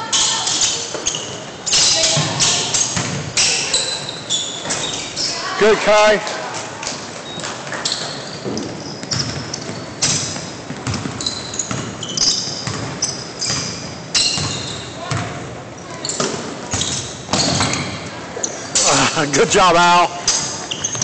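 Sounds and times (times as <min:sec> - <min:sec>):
players' voices: 0:00.0 - 0:07.2, 0:17.4 - 0:21.0
sneakers squeaking: 0:00.0 - 0:21.0
basketball bouncing: 0:02.0 - 0:03.4, 0:08.4 - 0:15.4
feet pounding on hardwood court: 0:08.4 - 0:12.0.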